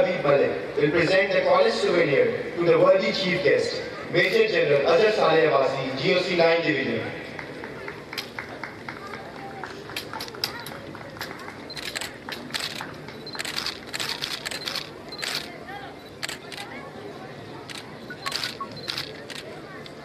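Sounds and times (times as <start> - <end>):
murmur of voices: 0.0 - 20.0
camera shutters clicking: 11.7 - 16.7, 17.7 - 19.5.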